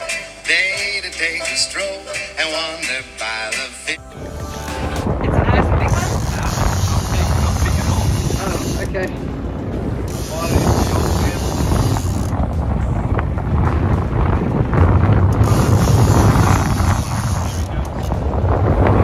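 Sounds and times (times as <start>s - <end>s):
boat engine low rumble: 4.0s - 19.0s
wind buffeting microphone: 4.0s - 19.0s.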